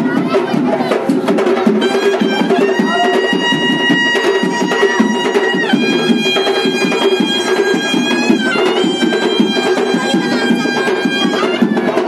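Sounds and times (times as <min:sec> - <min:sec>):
fast dense drumming: 0:00.0 - 0:12.0
reed wind instrument long notes: 0:01.8 - 0:12.0.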